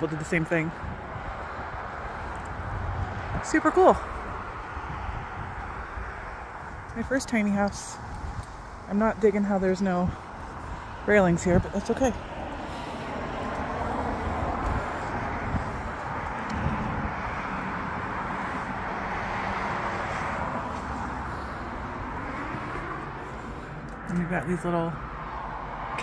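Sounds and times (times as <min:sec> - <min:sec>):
road traffic passing: 0:00.0 - 0:26.0.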